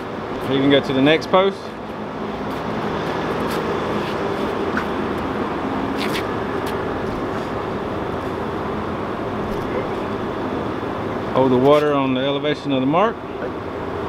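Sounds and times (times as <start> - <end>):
machine running with low hum: 0.0 - 14.0.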